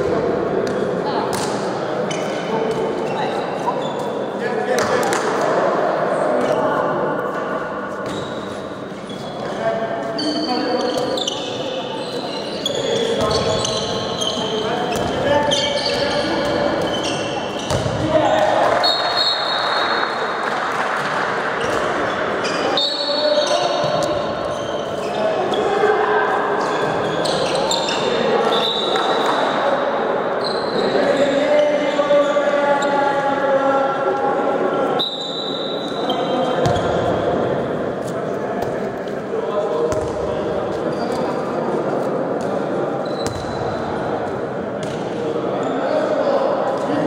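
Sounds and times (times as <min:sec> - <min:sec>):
sneakers squeaking: 0:00.6 - 0:05.2, 0:07.9 - 0:20.1, 0:21.6 - 0:25.9, 0:26.6 - 0:29.6, 0:30.4 - 0:33.0, 0:35.0 - 0:39.0, 0:39.8 - 0:46.1
ball bouncing on court floor: 0:14.9 - 0:15.2, 0:15.9 - 0:18.4, 0:36.6 - 0:37.1, 0:39.9 - 0:40.3, 0:43.2 - 0:43.6, 0:44.8 - 0:45.0.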